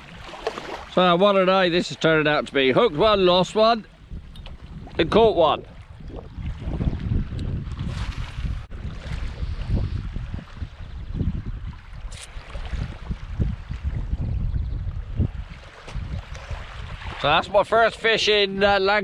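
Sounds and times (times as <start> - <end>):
wind buffeting microphone: 1.8 - 19.0.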